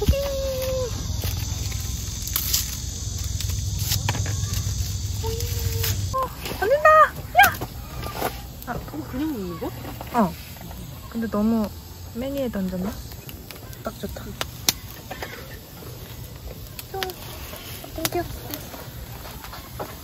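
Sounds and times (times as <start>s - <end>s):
steak sizzling on grill: 0.0s - 20.0s.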